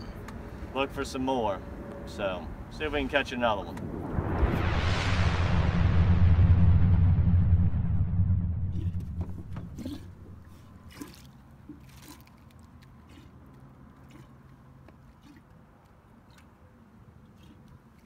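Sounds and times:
steady low tone: 1.8s - 10.9s
loud low whoosh: 3.0s - 10.9s.

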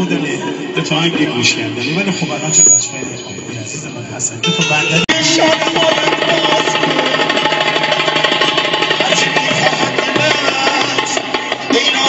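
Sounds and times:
keyboard notes held: 0.7s - 8.4s.

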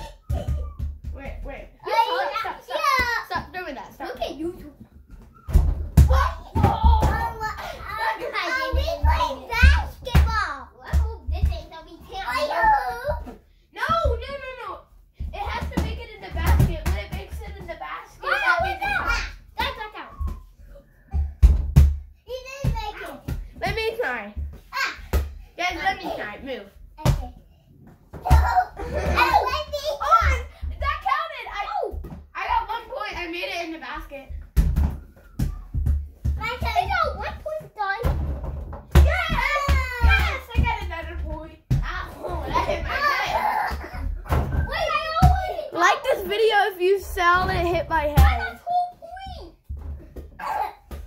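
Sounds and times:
children squealing and shouting: 0.0s - 1.1s, 4.9s - 10.4s, 11.9s - 13.4s, 18.1s - 20.9s, 28.2s - 33.0s, 34.9s - 38.0s, 38.9s - 40.9s, 41.8s - 49.5s, 50.4s - 51.0s
rubber ball bouncing on floor: 21.1s - 25.4s, 34.3s - 37.3s.

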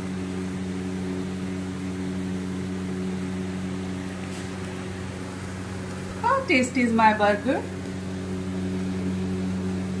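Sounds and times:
low electrical motor hum: 0.0s - 10.0s.

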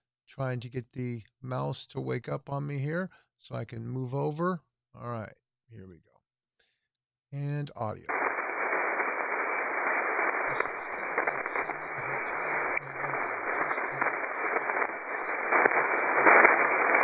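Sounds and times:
shortwave radio static hiss: 8.1s - 17.0s.

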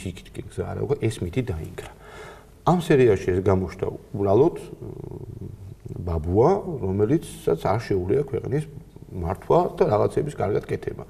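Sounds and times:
man speaking: 0.0s - 2.0s, 2.6s - 11.0s.

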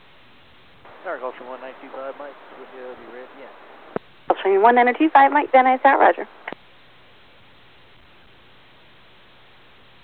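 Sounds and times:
radio receiver hiss: 0.0s - 10.0s
voice over radio: 0.9s - 3.6s
radio transmission click: 1.8s - 6.6s.

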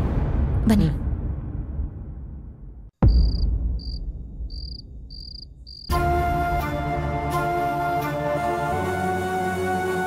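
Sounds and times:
low rumble: 0.0s - 5.1s
crickets chirping: 3.1s - 5.9s.

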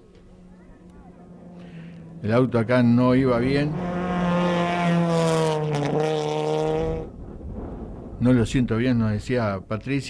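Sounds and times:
rally car engine at high revs: 3.2s - 7.1s.

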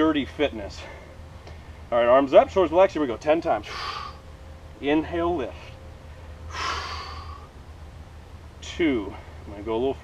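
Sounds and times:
man's breathy exhale: 6.5s - 7.5s.

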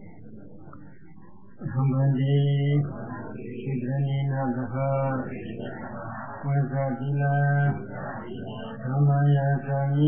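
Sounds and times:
man chanting: 1.6s - 5.6s, 6.4s - 10.0s.

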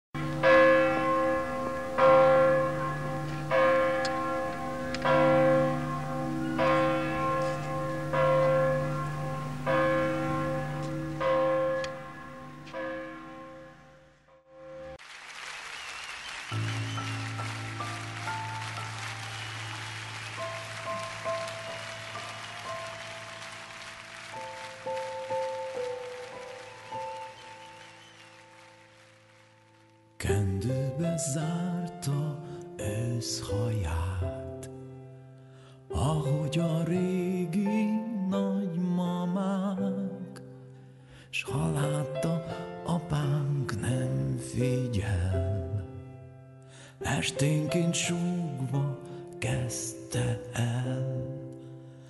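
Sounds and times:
church bell tolling: 0.2s - 15.0s, 16.7s - 26.5s
slow music of held notes: 0.2s - 15.0s, 16.6s - 52.0s.

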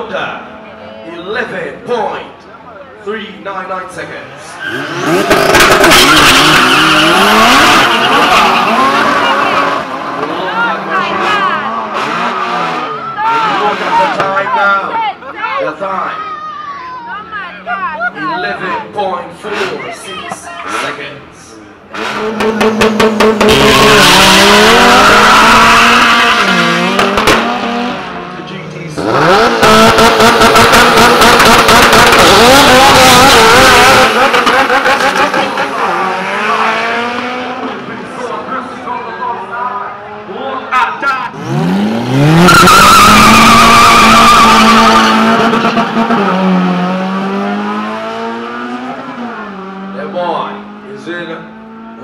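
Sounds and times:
spectators talking and shouting: 0.0s - 51.9s
departing car engine: 4.6s - 14.5s, 21.9s - 38.9s, 41.2s - 52.0s
engine revving at high revs: 4.7s - 12.9s, 21.9s - 28.2s, 29.0s - 37.7s, 41.3s - 52.0s.

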